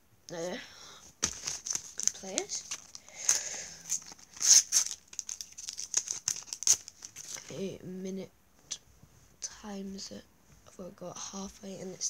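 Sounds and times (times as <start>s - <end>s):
wrapper crinkling and rustling: 1.2s - 7.6s.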